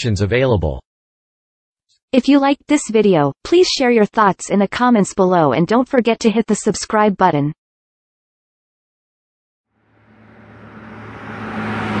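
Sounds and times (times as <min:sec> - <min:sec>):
low drone: 0:09.7 - 0:12.0
whoosh: 0:09.8 - 0:12.0.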